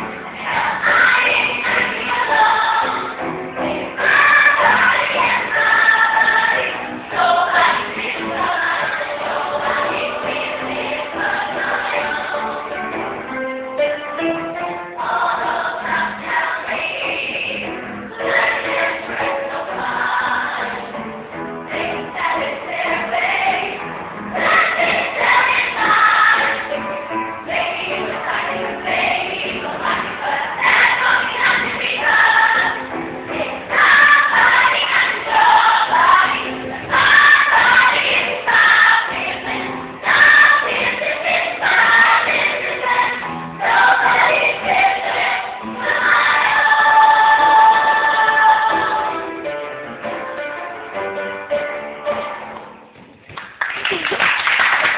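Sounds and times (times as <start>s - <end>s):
women's chorus singing: 0.0s - 13.1s, 14.9s - 49.4s
musical accompaniment: 0.0s - 54.9s.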